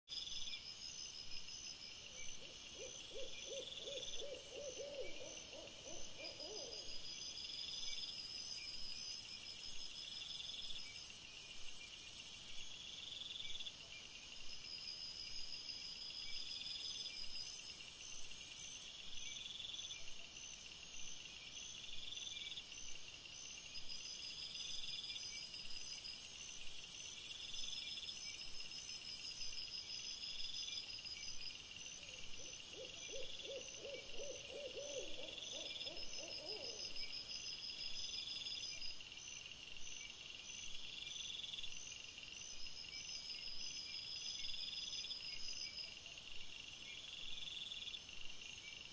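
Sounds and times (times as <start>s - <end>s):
insects chirping and buzzing: 0.1s - 48.9s.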